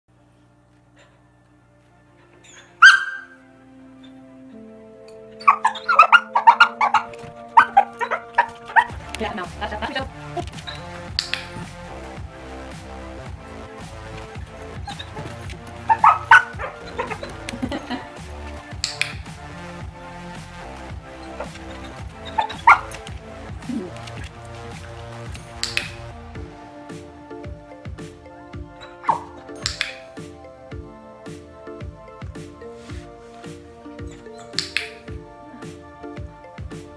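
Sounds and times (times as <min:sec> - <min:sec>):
background music: 0:00.1 - 0:36.9
dog yipping: 0:02.4 - 0:03.4, 0:05.4 - 0:08.9, 0:15.9 - 0:17.2.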